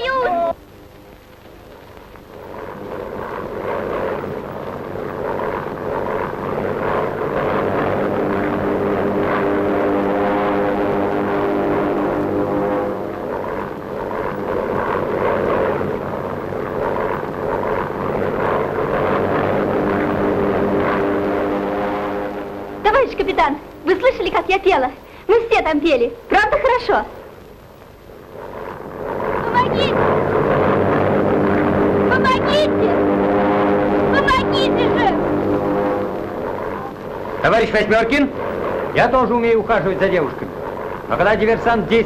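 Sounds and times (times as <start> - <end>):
propeller aircraft engine droning: 0.0 - 42.0.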